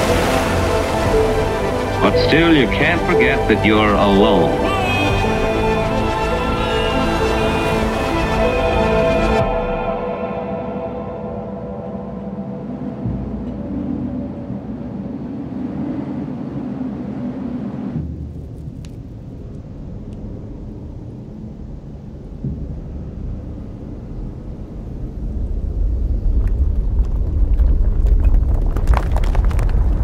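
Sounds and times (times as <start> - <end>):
low rumbling ambience: 0.0 - 30.0.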